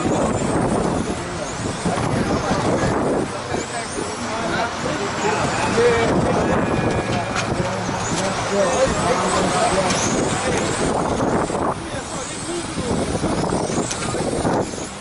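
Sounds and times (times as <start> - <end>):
people chatting: 0.0 - 14.6
electric motors whining: 0.0 - 15.0.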